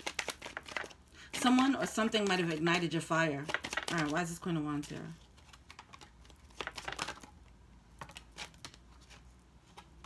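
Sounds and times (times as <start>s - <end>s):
cards being shuffled: 0.0s - 7.3s, 7.9s - 10.0s.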